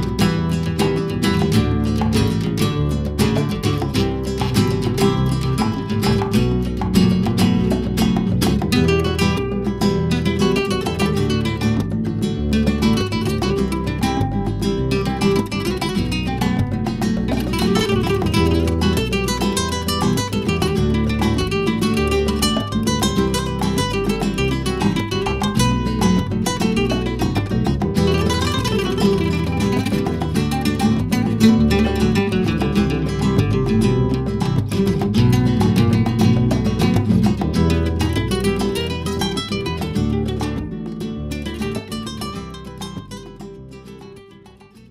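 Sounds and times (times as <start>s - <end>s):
flamenco guitar plucked notes: 0.0s - 44.9s.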